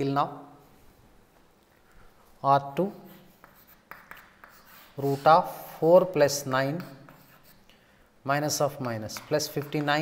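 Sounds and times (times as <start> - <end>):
chalk tapping and scraping: 2.2 - 10.0.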